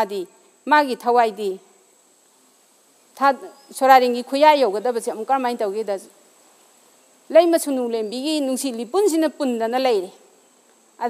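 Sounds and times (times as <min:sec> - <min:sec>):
woman speaking: 0:00.0 - 0:01.6, 0:03.2 - 0:06.1, 0:07.3 - 0:10.2.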